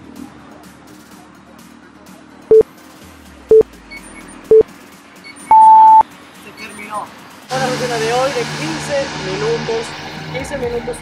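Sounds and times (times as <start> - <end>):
longer higher beep: 5.5 - 6.0
short timer beeps: 5.5 - 6.0.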